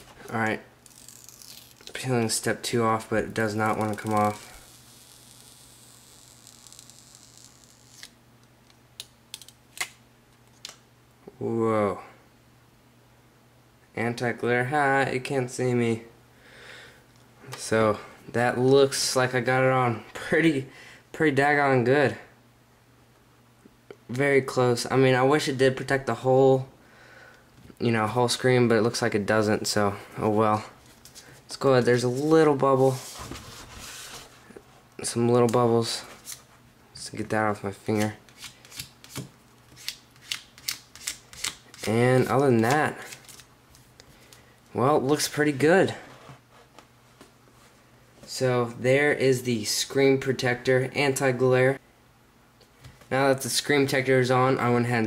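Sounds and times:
plastic film peeling hiss: 0.8s - 1.9s, 3.7s - 8.2s.

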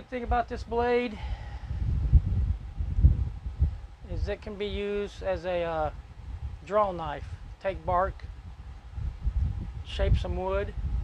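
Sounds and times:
microphone handling rumble: 0.0s - 11.0s.

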